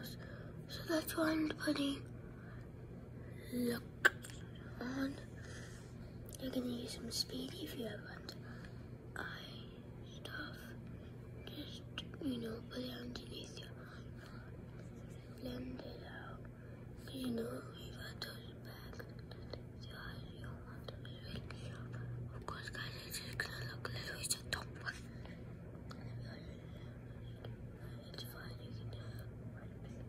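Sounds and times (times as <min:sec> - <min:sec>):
girl whispering: 0:00.0 - 0:02.1, 0:03.2 - 0:10.8, 0:11.4 - 0:25.2, 0:25.9 - 0:30.0
low hum: 0:00.0 - 0:30.0.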